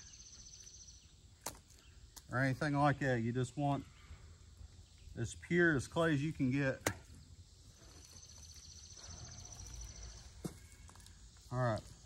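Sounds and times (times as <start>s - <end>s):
high rapid insect trill: 0.0s - 12.0s.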